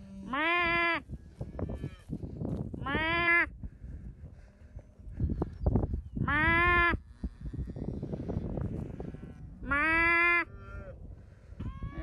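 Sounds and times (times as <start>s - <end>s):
wind buffeting microphone: 0.6s - 12.0s.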